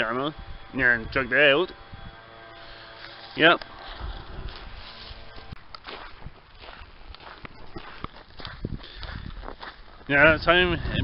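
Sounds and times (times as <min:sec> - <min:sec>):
footsteps on gravel: 0:02.6 - 0:10.9.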